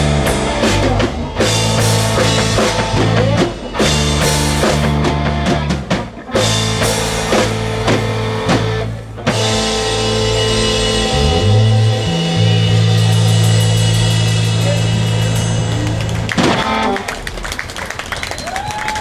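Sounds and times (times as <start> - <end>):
drum strokes: 0.0 - 17.3
live rock band playing: 0.0 - 18.6
cymbals rolling: 6.4 - 18.7.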